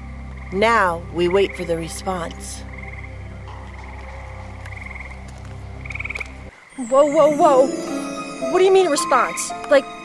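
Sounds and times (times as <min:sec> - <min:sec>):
frogs calling: 0:00.0 - 0:10.0.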